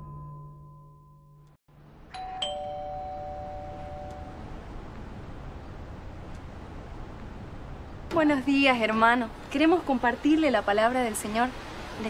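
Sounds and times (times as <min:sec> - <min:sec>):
doorbell ding-dong chime: 0:02.1 - 0:04.5.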